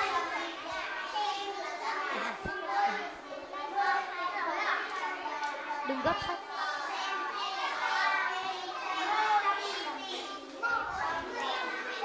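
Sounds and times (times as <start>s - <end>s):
children reading aloud: 0.0s - 12.0s.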